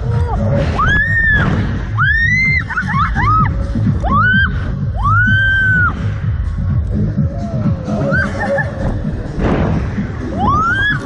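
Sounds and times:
loud music with steady beat: 0.0 - 11.0.

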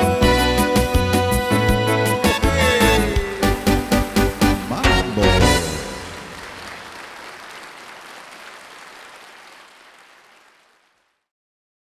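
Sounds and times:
audience applause: 5.4 - 11.2.

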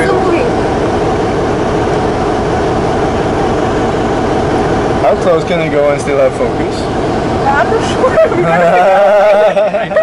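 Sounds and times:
ship machinery hum: 0.0 - 10.0.

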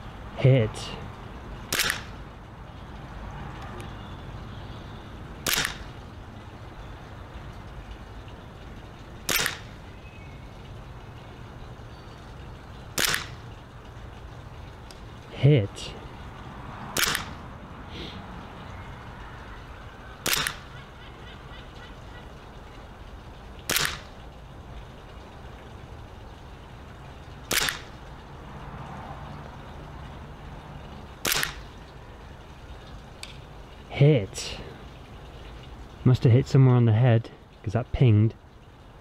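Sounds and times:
airsoft pistol shots: 1.7 - 2.1, 5.4 - 5.9, 9.3 - 9.7, 13.0 - 13.4, 17.0 - 17.4, 20.2 - 20.6, 23.7 - 24.1, 27.5 - 27.9, 31.2 - 31.6.

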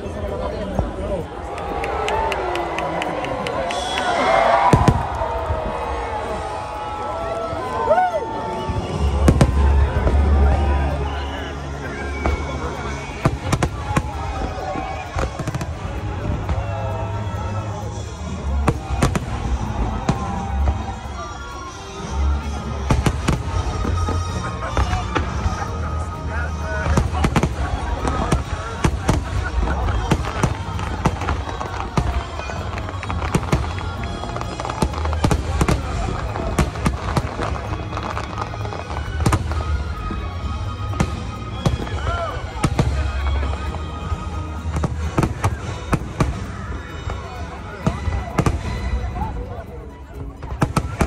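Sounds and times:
fireworks bangs: 0.2 - 49.6, 50.2 - 51.0.

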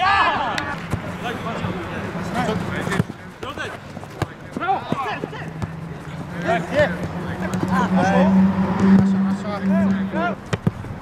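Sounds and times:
players shouting: 0.0 - 10.8.

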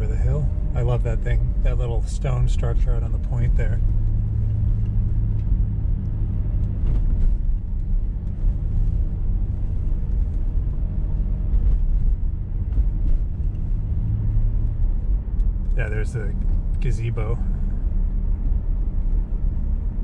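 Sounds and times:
car engine rumble: 0.0 - 20.0
road noise inside car: 0.0 - 20.0.

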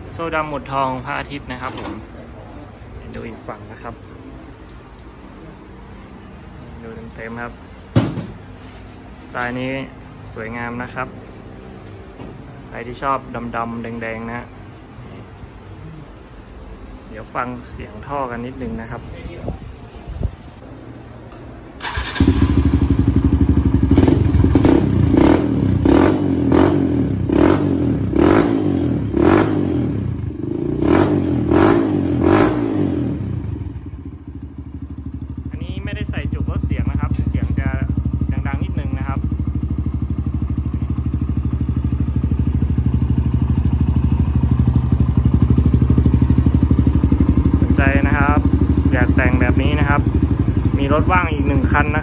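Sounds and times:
dirt bike engine revving and idling: 21.9 - 52.0.

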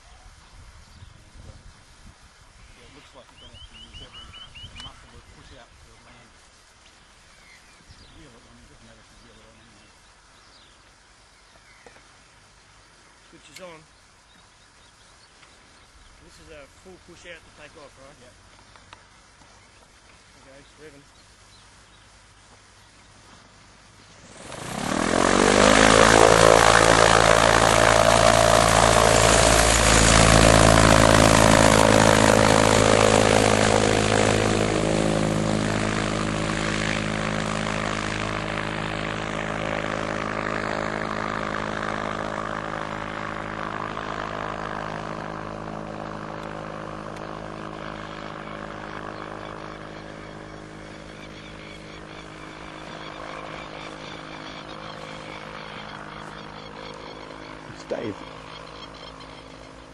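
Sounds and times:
propeller drone of microlight: 15.2 - 59.9.

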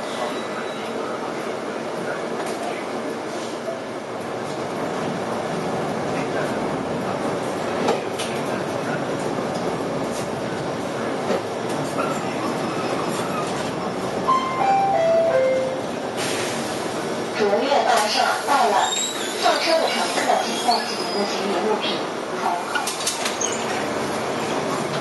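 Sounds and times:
bus engine and road noise: 0.1 - 14.3, 15.6 - 25.0
four-note descending chime: 14.3 - 15.9.

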